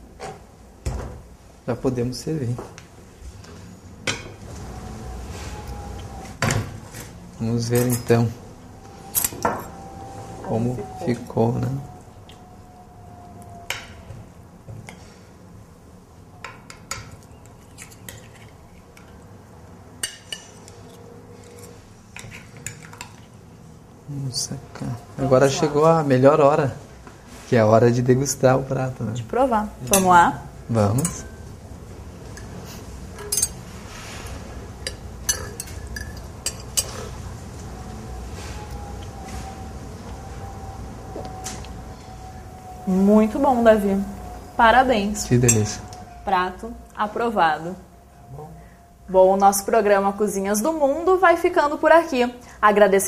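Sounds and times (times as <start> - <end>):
cutlery clinking on ceramic plates: 30.9 - 31.4, 33.2 - 33.6, 34.8 - 37.1.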